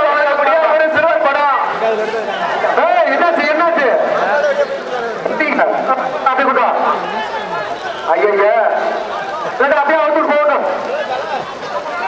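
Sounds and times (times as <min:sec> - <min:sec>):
men shouting and calling out: 0:00.0 - 0:12.0.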